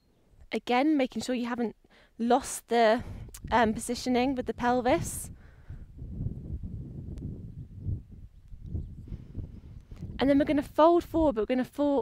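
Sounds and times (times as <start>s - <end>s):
wind buffeting microphone: 3.0s - 12.0s.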